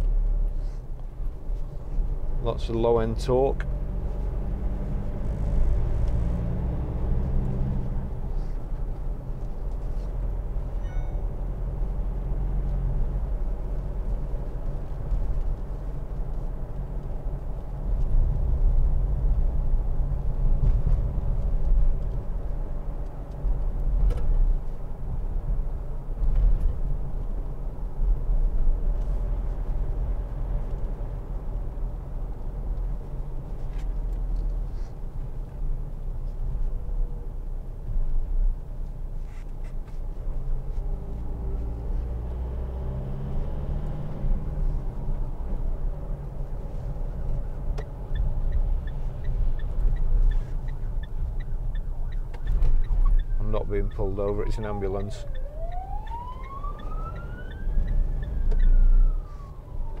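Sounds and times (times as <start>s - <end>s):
diesel engine rumbling: 0.0s - 60.0s
tyre and road noise: 0.0s - 60.0s.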